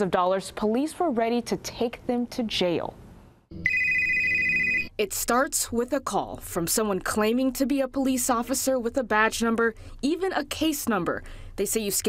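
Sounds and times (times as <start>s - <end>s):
telephone ringing: 3.6s - 4.9s.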